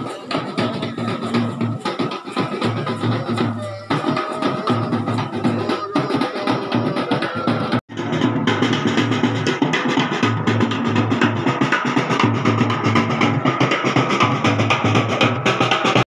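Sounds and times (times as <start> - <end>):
drums playing a fast beat: 0.0 - 16.0.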